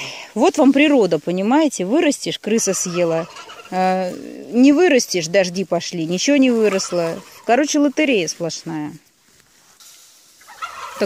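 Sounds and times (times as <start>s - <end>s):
turkey gobbling: 2.3s - 8.1s, 10.2s - 11.0s.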